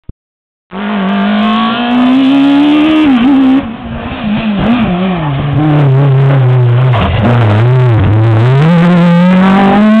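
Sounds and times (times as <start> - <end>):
rally car engine revving: 0.7 - 10.0.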